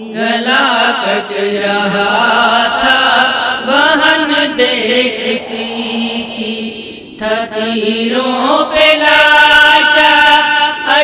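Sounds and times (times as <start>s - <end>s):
voices chanting a lament: 0.0s - 11.0s
steady low drone: 2.1s - 8.8s.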